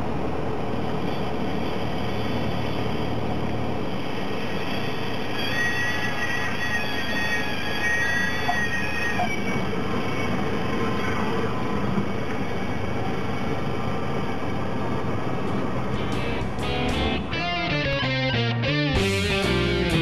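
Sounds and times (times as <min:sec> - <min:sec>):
plane engine and propeller: 0:00.0 - 0:20.0
high wavering whine: 0:00.6 - 0:20.0.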